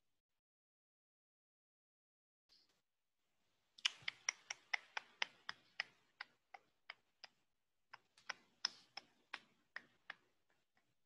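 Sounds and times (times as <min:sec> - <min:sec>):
faint sharp clicks: 0:03.8 - 0:10.9.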